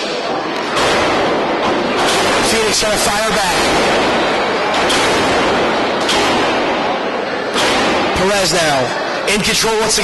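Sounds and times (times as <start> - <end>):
dense crowd noise: 0.0 - 10.0.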